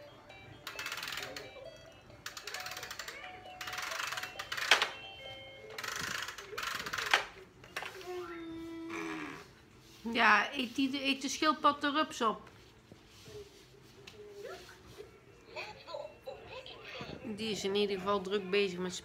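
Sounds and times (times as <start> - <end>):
electronic toy tune: 0.0 - 6.9.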